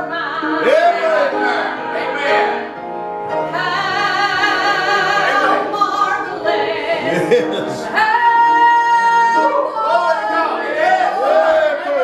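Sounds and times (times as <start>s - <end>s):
woman singing gospel song: 0.0s - 2.5s, 3.4s - 10.8s.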